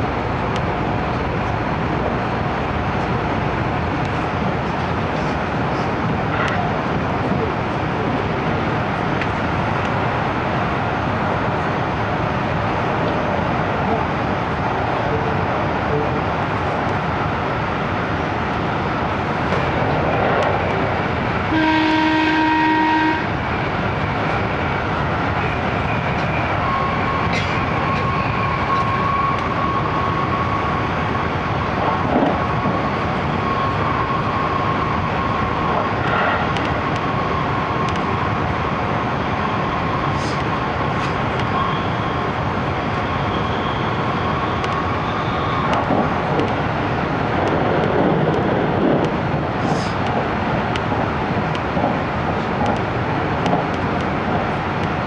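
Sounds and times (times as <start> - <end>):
train running noise: 0.0 - 55.0
train horn: 21.5 - 23.3.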